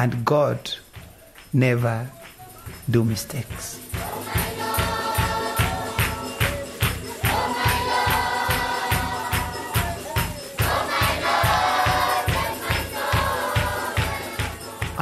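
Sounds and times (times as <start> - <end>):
jingling tambourine: 0.0 - 15.0
quick drum beat: 2.0 - 15.0
group singing: 3.9 - 15.0.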